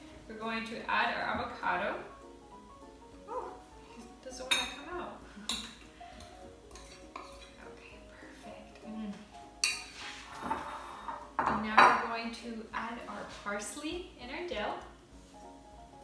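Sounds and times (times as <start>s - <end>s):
metal spoon scraping ceramic bowl: 6.7s - 7.6s, 9.6s - 11.3s.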